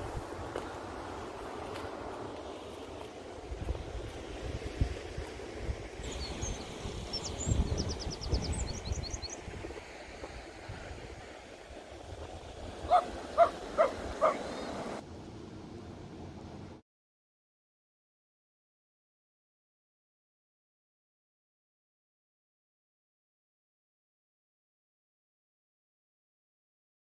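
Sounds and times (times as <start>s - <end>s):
wind buffeting microphone: 0.0s - 15.0s
small bird high chirps: 6.1s - 9.4s.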